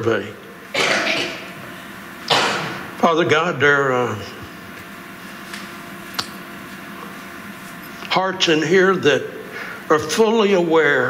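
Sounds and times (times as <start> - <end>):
man breathing into microphone: 9.5 - 9.9.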